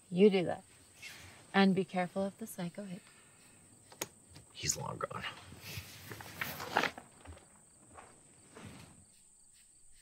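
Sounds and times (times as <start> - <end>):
footsteps: 5.6 - 10.0.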